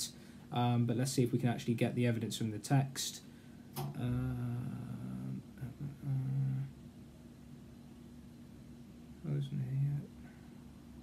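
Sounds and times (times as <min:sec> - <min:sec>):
man humming: 0:03.9 - 0:06.8.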